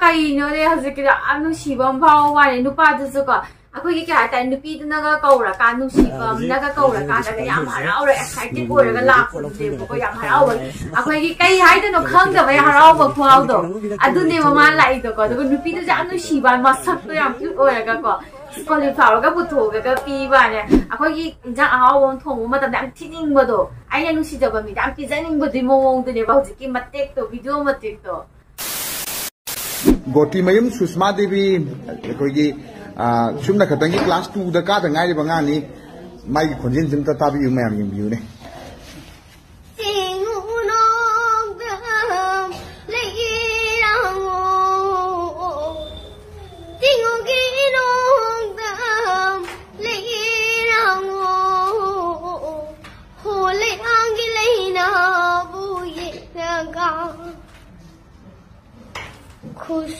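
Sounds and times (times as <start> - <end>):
white-noise static hiss: 28.4 - 30.4
girl singing: 39.8 - 46.0, 46.7 - 57.5.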